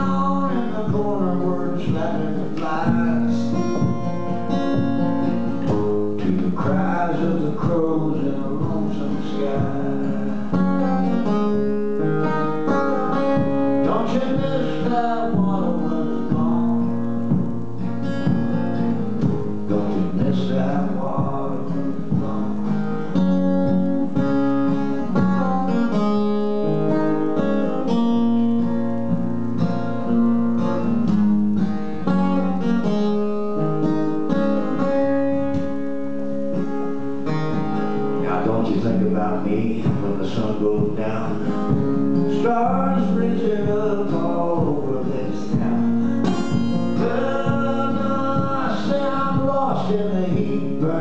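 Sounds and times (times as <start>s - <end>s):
acoustic guitar strumming: 0.0s - 51.0s.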